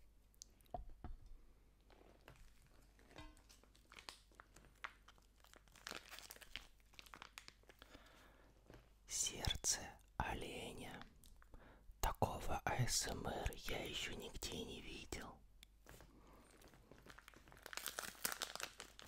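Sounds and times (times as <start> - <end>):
plastic packaging crinkling: 1.9 - 8.0, 16.4 - 19.0.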